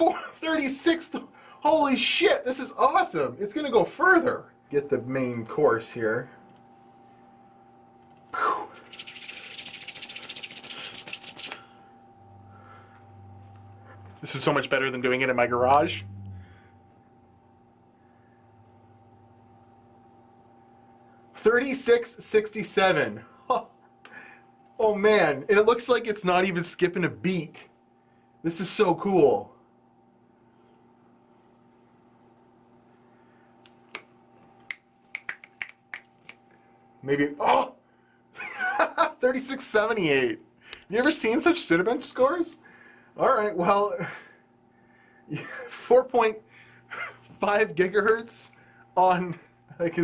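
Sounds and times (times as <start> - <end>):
palms rubbing together: 8.8 - 11.6
fingers snapping: 33.6 - 36.4.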